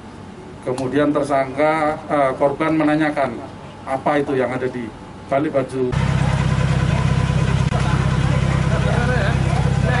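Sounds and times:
vehicle engine idling: 5.9 - 10.0
faint voices talking: 6.0 - 10.0.

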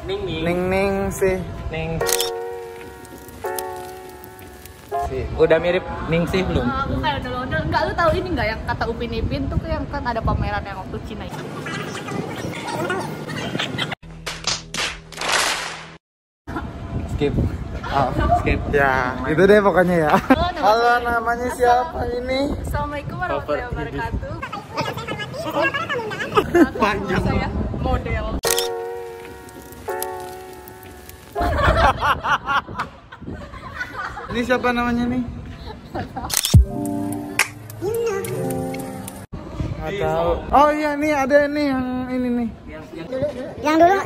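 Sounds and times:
background music steady chords: 2.1 - 6.3, 28.5 - 31.6, 36.6 - 39.3.

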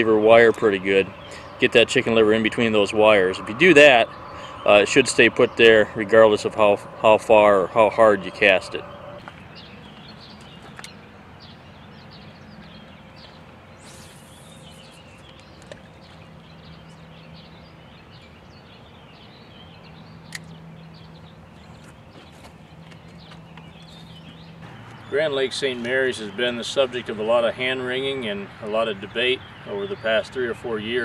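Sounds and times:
faint low hum: 0.0 - 10.3
bird chirps: 0.0 - 31.0
brief hiss: 13.8 - 15.0
sharp click: 20.3 - 20.6.

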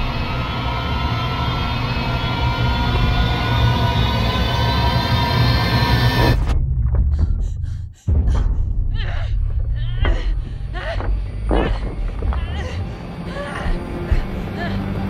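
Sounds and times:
orchestral drone of held tones: 0.0 - 6.4
deep rumble: 0.0 - 15.0.

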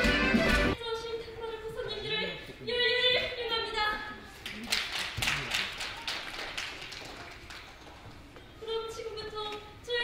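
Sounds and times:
audience applause: 4.5 - 8.2.

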